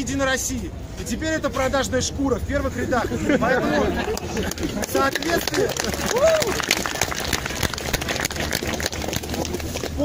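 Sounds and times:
crowd murmur: 2.8s - 10.0s
crowd clapping: 3.9s - 10.0s.

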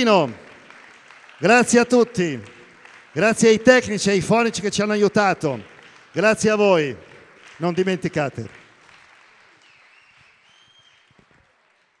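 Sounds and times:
faint audience applause: 0.0s - 12.0s.

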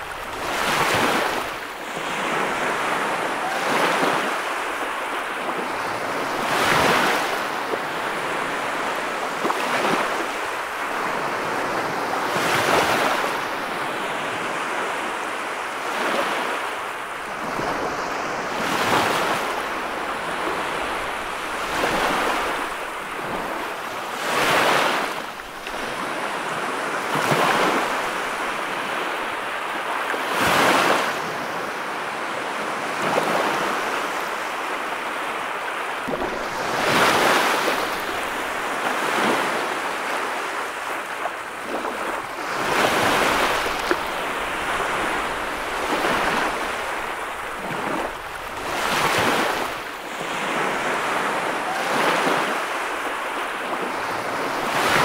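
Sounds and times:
ocean waves breaking on beach: 0.0s - 55.0s.

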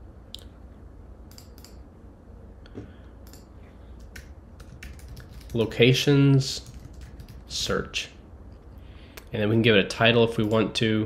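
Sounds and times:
low steady hum: 0.0s - 11.0s
computer keyboard keystrokes: 1.3s - 1.8s, 3.2s - 5.7s, 6.6s - 7.5s.

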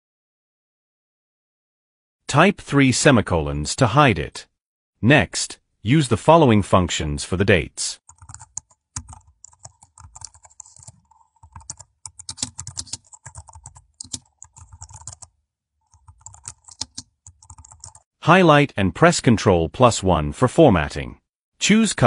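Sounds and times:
computer keyboard typing: 8.1s - 18.1s.

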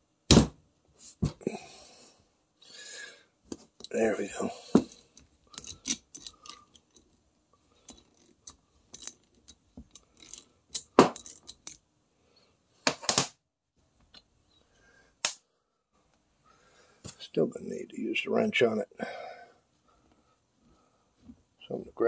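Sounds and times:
metal tools clattering: 4.6s - 7.2s, 7.8s - 11.8s
metallic ratchet clicks and clinks: 5.5s - 7.0s.

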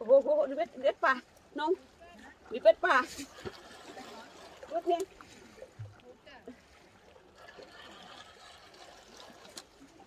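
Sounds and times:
small waves lapping on rocks: 0.0s - 10.0s.

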